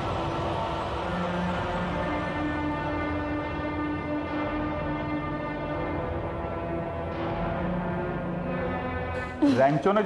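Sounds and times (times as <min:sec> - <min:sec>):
sustained chord music: 0:00.0 - 0:10.0.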